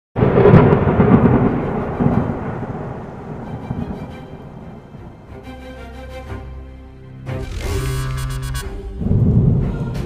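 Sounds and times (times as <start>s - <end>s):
thunderclap with rolling rumble: 0.2s - 5.3s.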